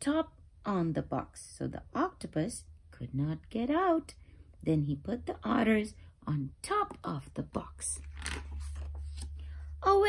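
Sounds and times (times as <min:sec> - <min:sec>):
book page turning: 0:08.0 - 0:09.4
paper rustling: 0:08.0 - 0:09.4.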